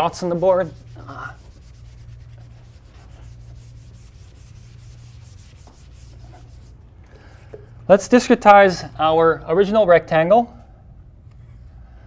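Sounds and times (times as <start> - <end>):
eraser rubbing on whiteboard: 0.2 - 6.8.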